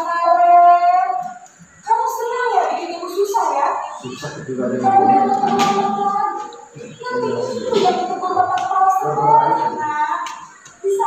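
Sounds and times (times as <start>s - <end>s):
girl singing over loudspeakers: 0.0s - 11.0s.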